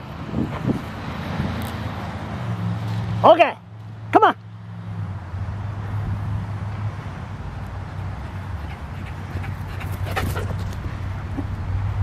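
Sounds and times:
dog running: 8.0 - 11.1.

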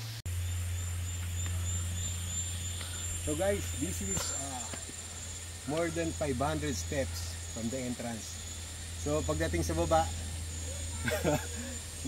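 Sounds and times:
high steady whine: 0.0 - 12.0.

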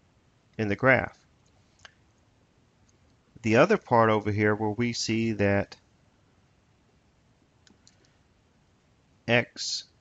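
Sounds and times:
small clicks: 7.6 - 8.2.

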